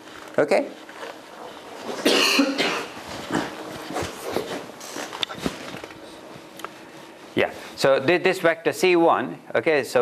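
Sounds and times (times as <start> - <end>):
person coughing: 2.0 - 3.6.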